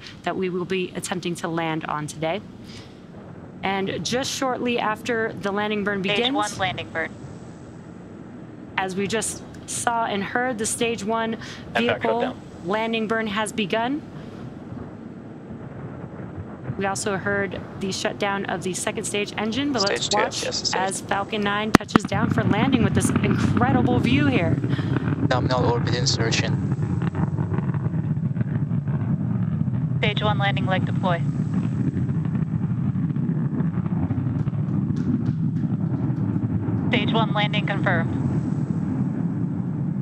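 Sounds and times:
rocket engine rushing rumble: 0.0s - 40.0s.

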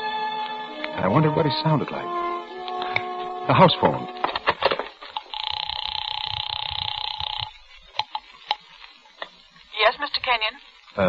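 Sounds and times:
sharp clicks: 4.5s - 8.6s
buzzing telephone ring: 5.2s - 7.6s.

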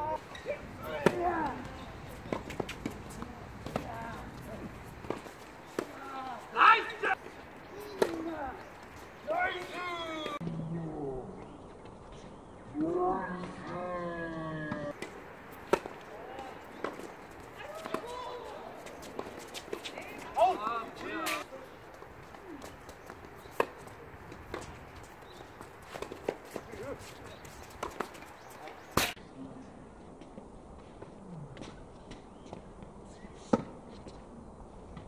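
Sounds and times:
tennis ball bouncing: 0.3s - 6.1s, 7.2s - 8.6s, 14.7s - 21.4s, 22.2s - 29.2s
racket hitting tennis ball: 0.4s - 6.1s, 7.3s - 8.4s, 14.7s - 21.5s, 22.2s - 24.9s, 25.6s - 29.2s.

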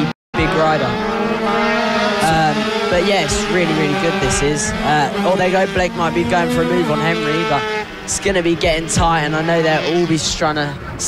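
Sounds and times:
minibike engines at high revs: 0.0s - 10.8s.

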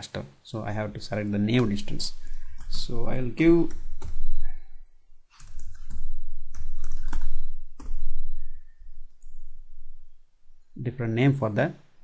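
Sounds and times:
computer keyboard typing: 5.4s - 8.0s.

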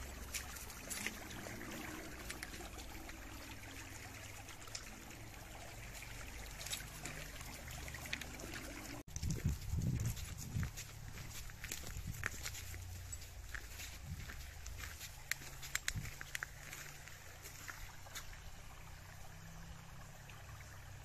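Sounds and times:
stream trickling over stones: 0.0s - 21.0s.

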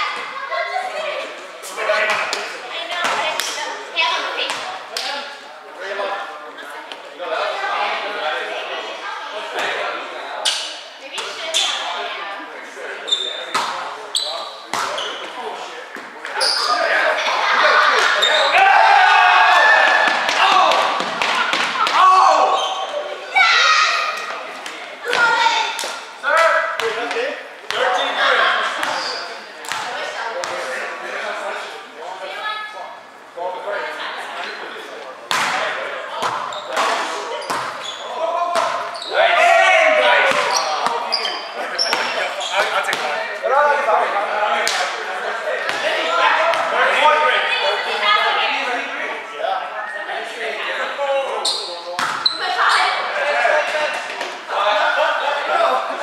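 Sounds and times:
shoe squeaks: 11.4s - 11.9s, 13.0s - 15.4s, 16.4s - 16.9s, 18.2s - 18.6s, 22.4s - 23.0s, 28.9s - 29.4s, 36.5s - 38.2s, 38.8s - 39.2s, 40.4s - 42.8s, 51.4s - 53.0s
volleyball hits: 13.5s - 13.9s, 14.7s - 15.2s, 19.5s - 22.1s, 35.3s - 37.8s, 38.4s - 39.0s, 40.2s - 41.1s, 52.0s - 52.4s
players shouting: 16.4s - 24.3s, 36.6s - 48.6s.

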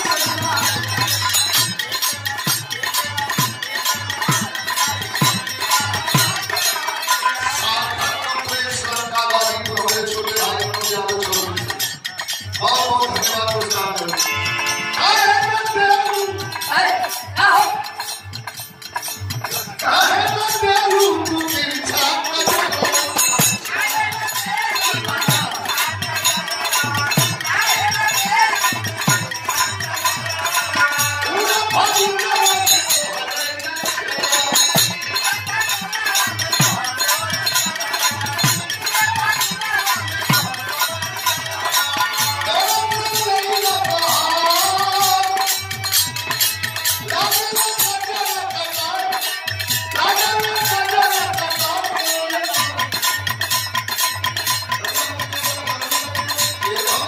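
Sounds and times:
drum beat: 0.0s - 7.0s, 15.0s - 57.0s
jingling percussion: 0.0s - 57.0s.

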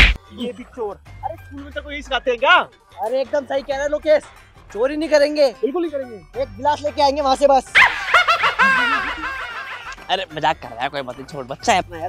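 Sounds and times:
high-pitched giggling laughter: 7.8s - 10.0s.

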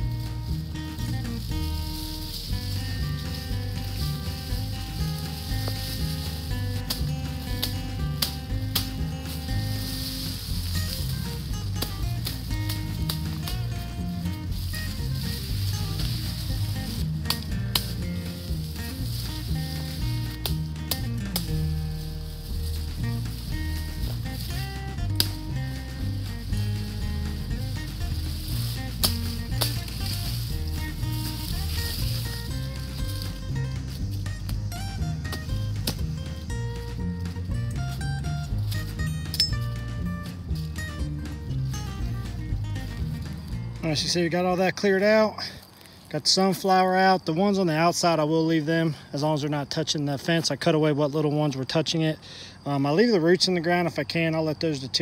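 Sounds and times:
bass line: 0.0s - 44.5s
melody: 38.0s - 42.8s
sharp percussive hits: 39.2s - 40.0s.

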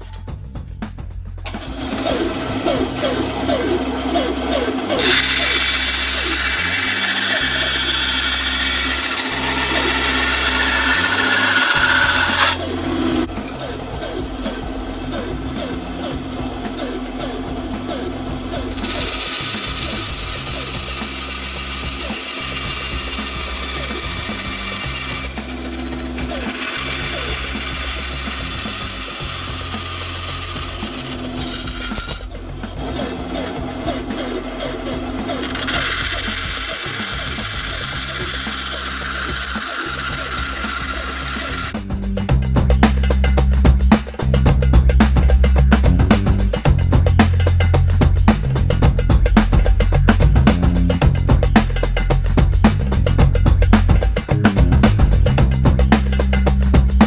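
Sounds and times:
bandsaw cutting metal: 1.4s - 41.8s
bandsaw running: 1.4s - 41.9s.

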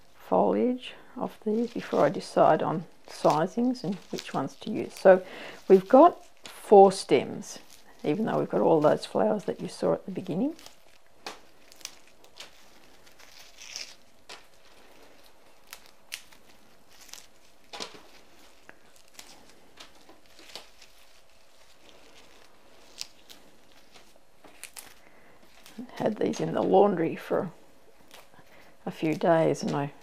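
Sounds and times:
leaves tearing and rustling: 1.3s - 26.7s, 28.0s - 30.0s
small stem snaps: 15.6s - 16.4s.

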